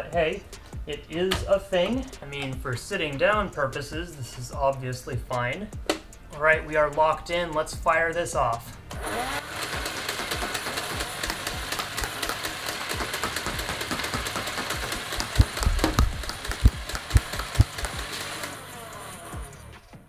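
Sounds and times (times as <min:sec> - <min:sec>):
heavy thumps: 0:15.2 - 0:18.0.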